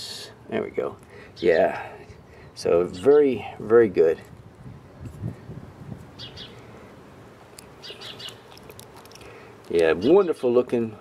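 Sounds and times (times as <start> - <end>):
small birds chirping: 0.6 - 4.3, 6.1 - 6.8, 7.5 - 10.9.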